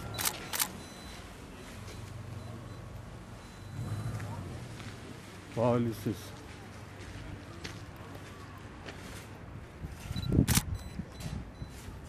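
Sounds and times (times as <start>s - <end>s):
sharp clicks: 10.4s - 10.8s.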